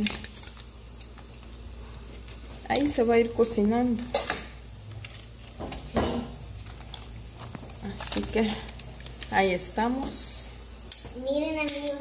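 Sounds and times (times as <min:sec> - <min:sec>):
bump against pot: 0:05.6 - 0:06.4
metal tongs clicking on pot: 0:10.9 - 0:12.0.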